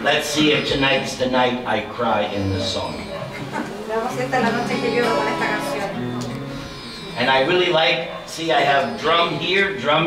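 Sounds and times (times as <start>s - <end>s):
voices singing: 0.0s - 10.0s
acoustic guitar plucked and strummed: 4.0s - 7.2s.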